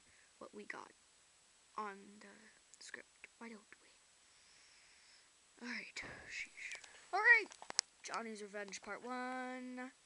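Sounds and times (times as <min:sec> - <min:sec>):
person whispering softly: 0:05.6 - 0:07.2.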